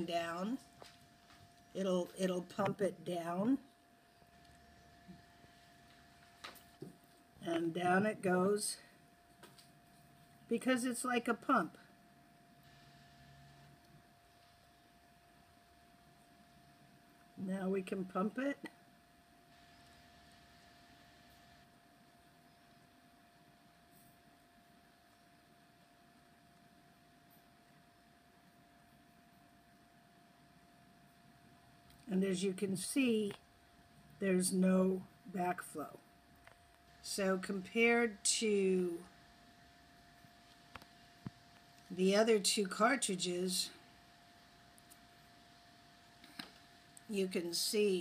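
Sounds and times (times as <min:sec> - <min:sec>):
faint steady hum: 0:00.0 - 0:48.0.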